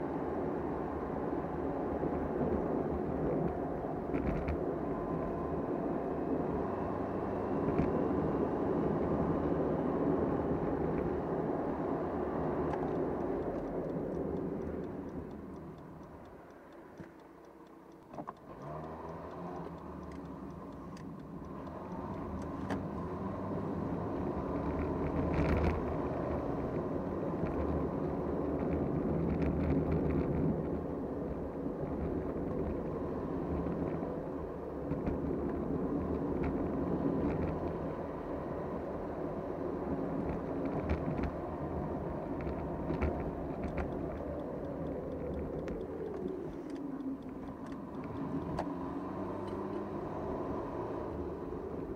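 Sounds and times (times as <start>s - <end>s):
car road and engine noise: 0.0s - 51.9s.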